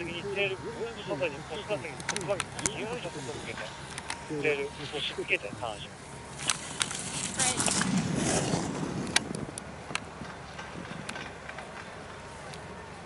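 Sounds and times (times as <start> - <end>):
faint distant voices: 0.0 - 7.8, 11.4 - 13.0
sharp clicks: 2.0 - 2.8.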